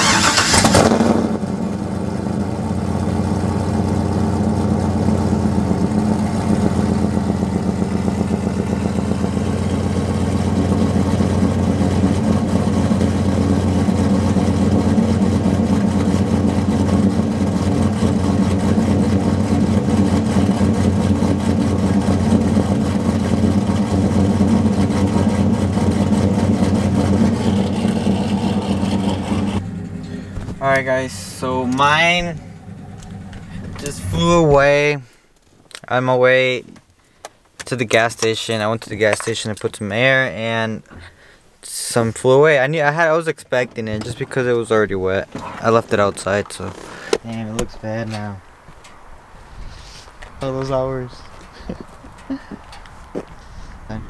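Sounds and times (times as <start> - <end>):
truck engine starting and idling: 0.0 - 35.2, 41.9 - 49.0.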